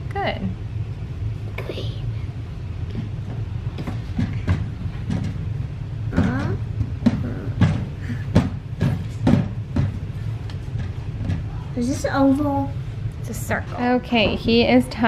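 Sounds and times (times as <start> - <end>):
steady low hum: 0.0 - 15.0
child murmuring: 6.1 - 8.2.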